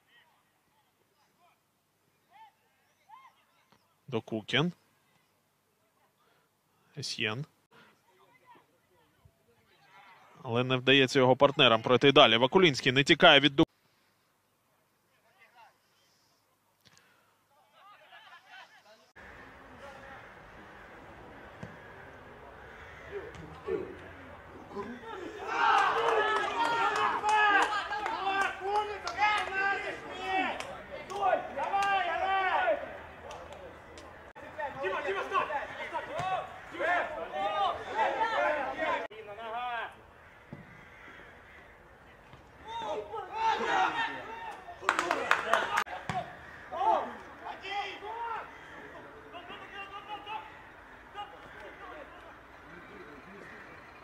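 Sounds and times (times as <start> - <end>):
open-air background noise: 0.0 - 54.0
men shouting in celebration: 23.1 - 33.2, 34.4 - 39.1, 42.6 - 46.0.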